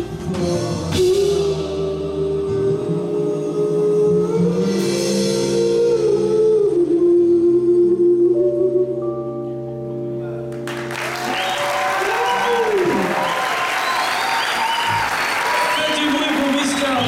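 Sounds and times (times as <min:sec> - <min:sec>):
audience applauding and cheering: 0:10.5 - 0:17.0
whoops and shouts: 0:11.0 - 0:16.2.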